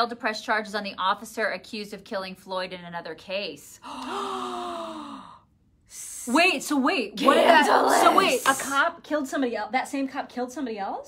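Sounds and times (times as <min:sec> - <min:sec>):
woman gasping: 0:03.8 - 0:05.5.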